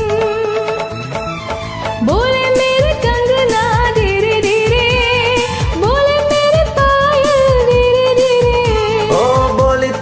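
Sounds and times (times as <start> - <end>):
karaoke backing track: 0.0 - 10.0.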